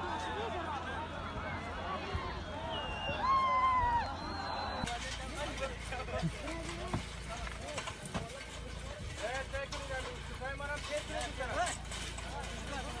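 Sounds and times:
crowd shouting: 0.0s - 4.9s.

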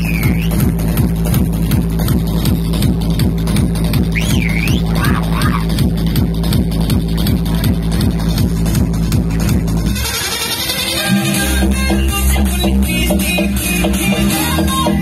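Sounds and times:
loud electronic dance music: 0.0s - 15.0s.

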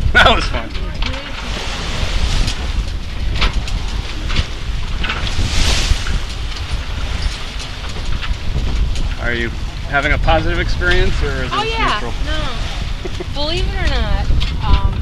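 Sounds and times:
water splashing along hull: 0.0s - 15.0s
wind buffeting microphone: 0.0s - 15.0s.

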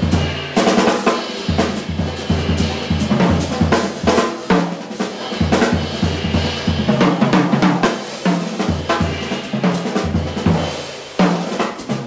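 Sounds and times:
jazz drum kit solo: 0.0s - 12.0s.

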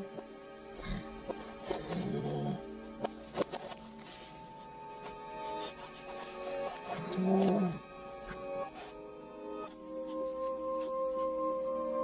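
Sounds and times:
reversed orchestral music: 0.0s - 12.0s.

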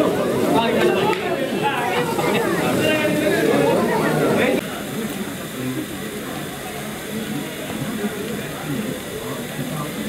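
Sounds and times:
muffled voices: 0.0s - 10.0s
steady hiss: 0.0s - 10.0s.

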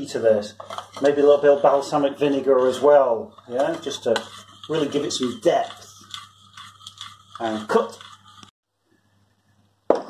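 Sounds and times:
faint kitchen noise: 0.0s - 10.0s.

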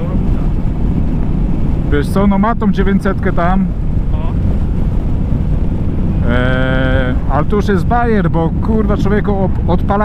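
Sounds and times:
motorcycle engine rumble: 0.0s - 10.0s
wind noise on microphone: 0.0s - 10.0s.

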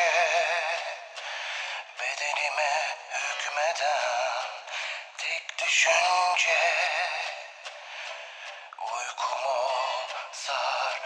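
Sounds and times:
man singing with vibrato: 0.0s - 11.0s
pop backing music: 0.0s - 11.0s.

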